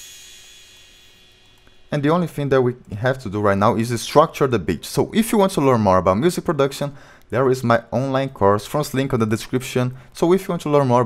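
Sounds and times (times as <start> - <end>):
crash cymbal ringing: 0.0 - 2.4.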